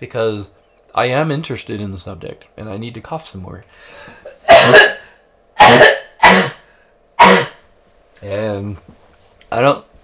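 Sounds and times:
man coughing: 4.1s - 7.6s.

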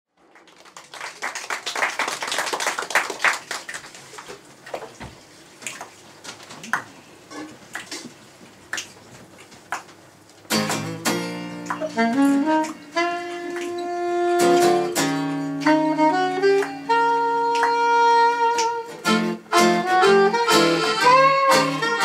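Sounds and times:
acoustic guitar strumming: 10.5s - 22.0s
reed instruments holding chords: 10.5s - 22.0s.

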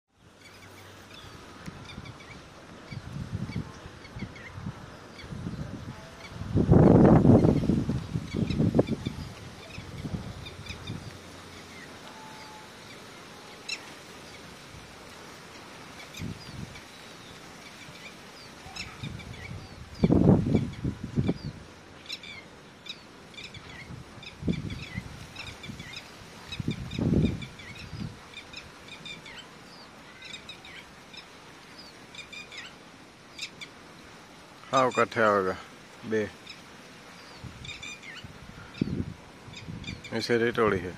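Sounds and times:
low rumbles on microphone: 3.0s - 11.2s
lapwing calls: 6.1s - 14.6s, 15.5s - 34.2s, 36.3s - 40.2s.

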